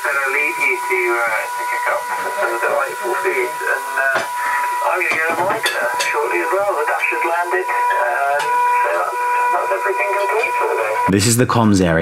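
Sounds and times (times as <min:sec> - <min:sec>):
steady high tone: 0:00.0 - 0:11.9
voice over two-way radio: 0:00.0 - 0:12.0.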